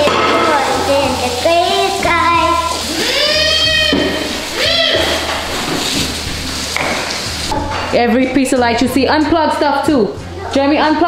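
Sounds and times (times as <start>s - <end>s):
child making drawn-out sounds: 1.4s - 4.0s, 4.6s - 5.1s.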